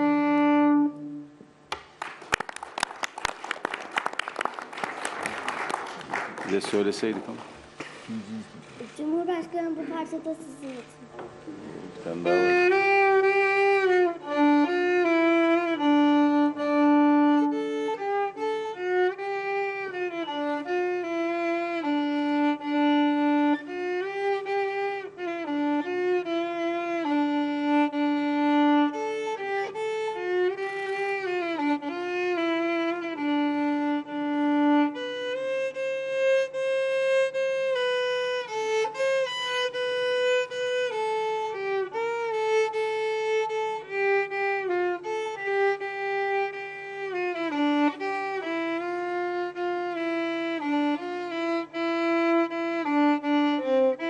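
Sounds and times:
solo violin melody: 0.0s - 1.5s, 12.0s - 54.0s.

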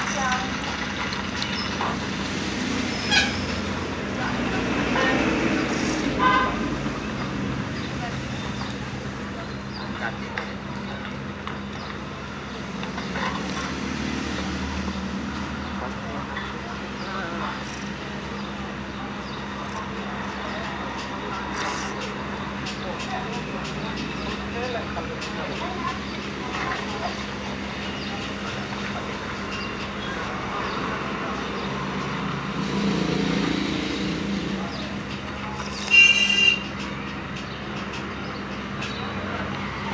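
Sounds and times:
street noise: 0.0s - 39.9s
vehicle engine humming: 0.0s - 39.9s.

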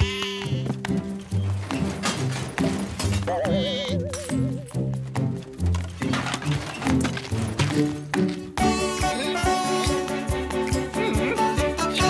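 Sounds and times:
cartoon goat bleating: 0.0s - 0.9s, 3.2s - 4.6s
background music: 0.0s - 12.0s.

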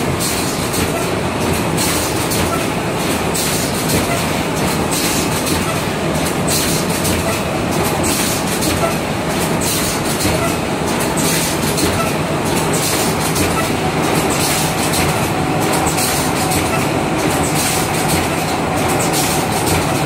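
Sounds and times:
machine mechanical clatter: 0.0s - 20.0s.

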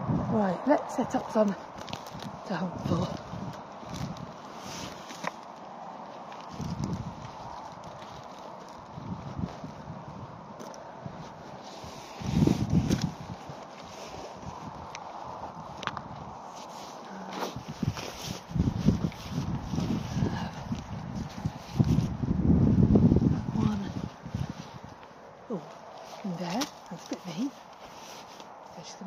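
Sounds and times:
footsteps through dry bracken: 1.3s - 22.2s, 22.9s - 29.0s.

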